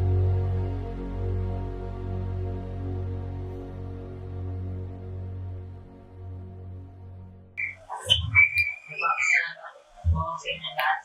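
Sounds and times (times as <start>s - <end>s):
high whistle-like tone: 7.6s - 10.8s.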